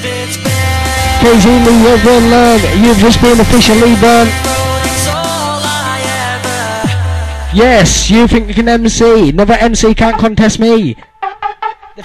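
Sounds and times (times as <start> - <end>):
electronic dance music: 0.0 - 12.0.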